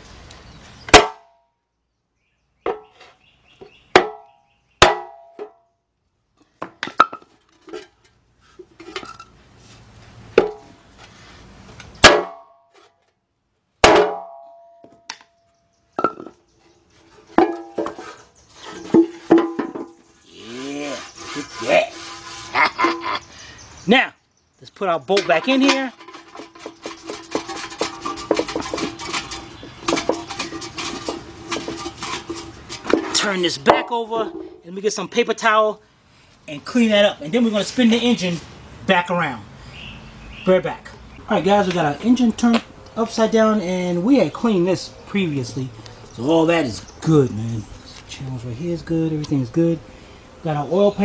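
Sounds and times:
hammer striking wooden block: 0.9 - 1.3, 3.9 - 5.6, 12.0 - 12.6, 13.8 - 15.3
metal pan ringing: 13.9 - 15.1.

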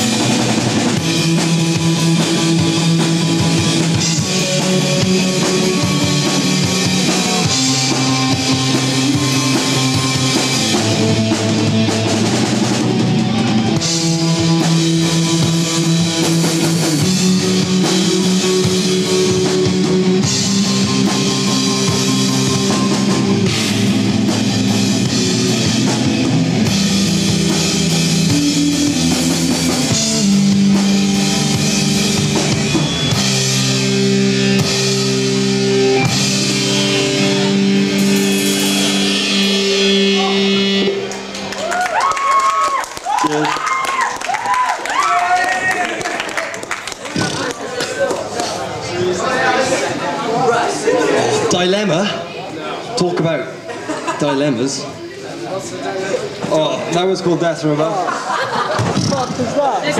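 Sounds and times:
rock band playing live: 0.0 - 49.0.

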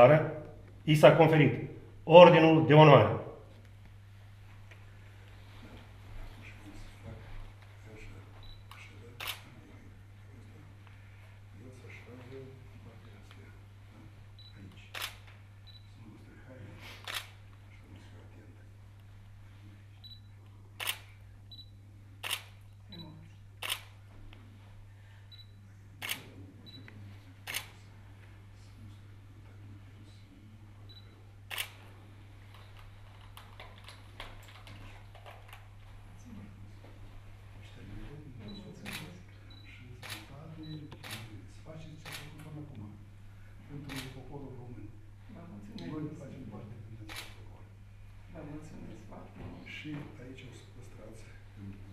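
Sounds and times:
low electrical hum: 0.0 - 51.9
camera shutters clicking: 8.7 - 9.5, 14.9 - 15.4, 17.0 - 17.4, 20.8 - 21.2, 22.2 - 22.6, 23.6 - 24.0, 26.0 - 26.3, 27.4 - 27.8, 31.5 - 31.8, 38.8 - 39.1, 40.0 - 40.3, 40.9 - 41.3, 42.0 - 42.4, 43.9 - 44.2, 47.1 - 47.4.

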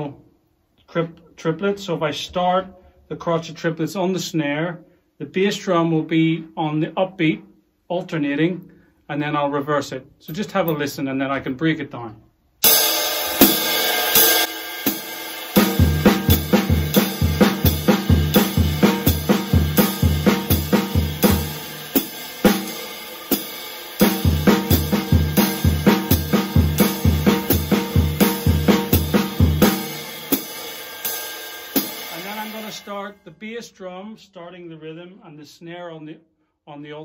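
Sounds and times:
ride cymbal beat: 12.6 - 32.9
snare drum: 12.7 - 32.8.

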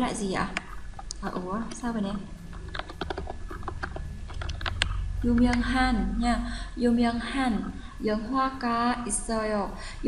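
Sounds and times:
typing on computer keyboard: 2.6 - 5.6.

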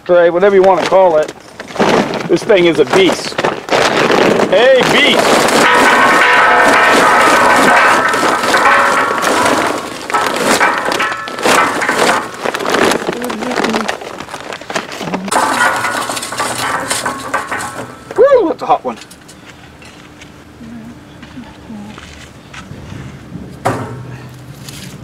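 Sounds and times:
charcoal clattering into metal basket: 0.5 - 19.4.

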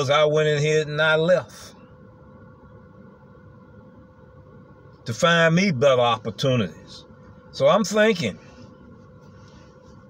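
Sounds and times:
thin steady hum: 0.0 - 10.0.

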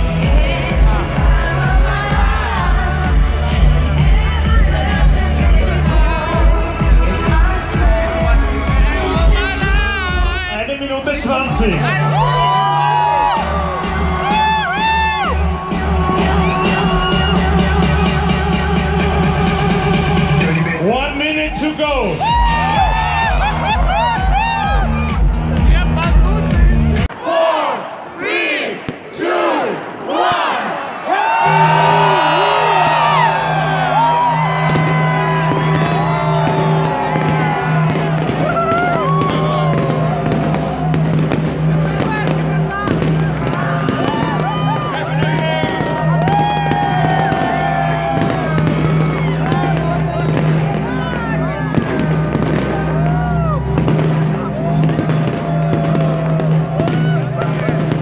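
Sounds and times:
crowd shouting: 11.6 - 18.2, 22.2 - 26.1, 27.1 - 58.0
fireworks bangs and crackles: 34.0 - 58.0.

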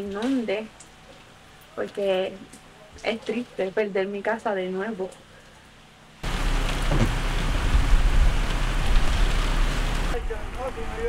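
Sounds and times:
deep rumble: 6.2 - 11.0
heavy rain falling: 6.2 - 11.0.

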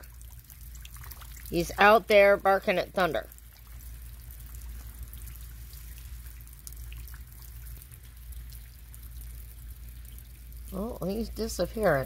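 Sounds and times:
drops ticking close by: 0.0 - 12.0
rain falling: 0.0 - 12.0.

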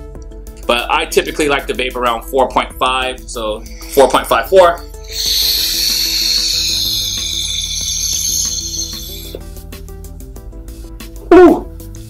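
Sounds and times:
background music: 0.0 - 12.0
vape air hiss: 3.6 - 9.5.

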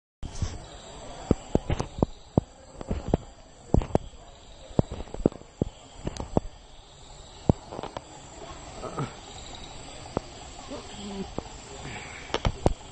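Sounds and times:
steady hiss: 0.2 - 12.9
sharp pops and knocks: 1.2 - 6.5, 7.4 - 8.0, 12.3 - 12.8.

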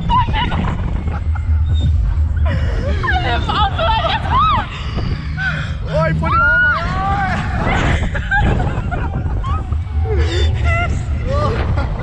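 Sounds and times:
riders squealing and laughing: 0.0 - 12.0
wind rushing over microphone: 0.0 - 12.0.

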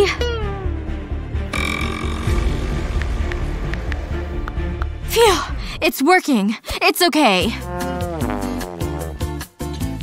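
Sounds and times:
background music: 0.0 - 10.0
sustained musical tone: 1.5 - 3.3.

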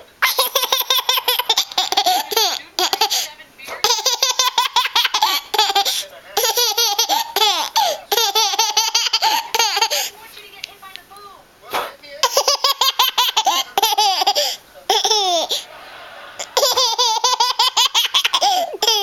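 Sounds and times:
toddler giggling: 0.2 - 10.1, 12.2 - 15.7, 16.4 - 19.0.

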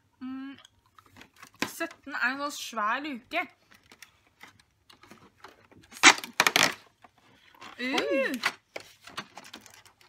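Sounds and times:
cardboard and paper rustling: 3.6 - 10.0.

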